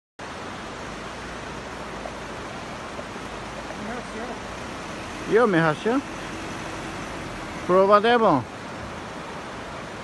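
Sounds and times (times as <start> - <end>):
steady rushing noise: 0.2 - 10.0.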